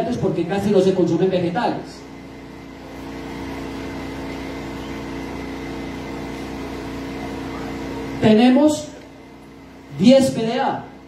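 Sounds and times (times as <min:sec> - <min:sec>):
steady machine hum: 0:00.0 - 0:11.0.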